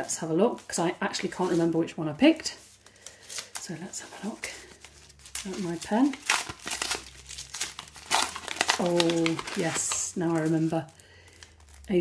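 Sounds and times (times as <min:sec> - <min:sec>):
paper crinkling: 0:02.6 - 0:12.0.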